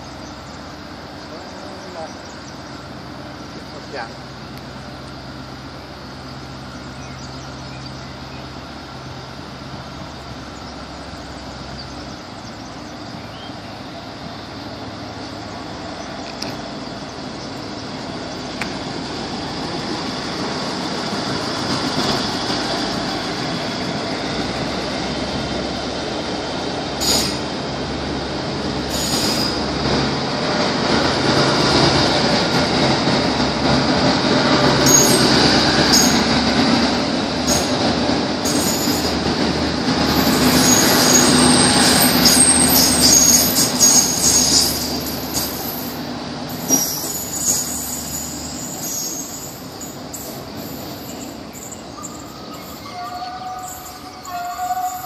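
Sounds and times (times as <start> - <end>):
diesel train engines under load: 0.0 - 55.0
train wheels squealing: 27.0 - 27.5, 28.8 - 29.7, 34.5 - 36.4, 37.5 - 39.2, 40.0 - 55.0.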